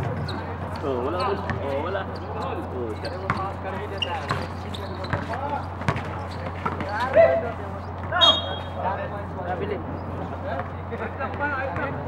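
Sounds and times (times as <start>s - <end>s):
basketball bouncing on concrete: 0.0s - 1.8s, 2.4s - 8.3s
people calling out: 8.1s - 8.8s.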